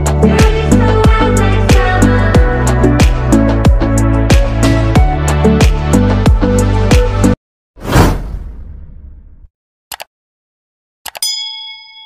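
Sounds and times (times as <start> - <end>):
background music: 0.0 - 7.4
whoosh sound effect: 7.8 - 9.2.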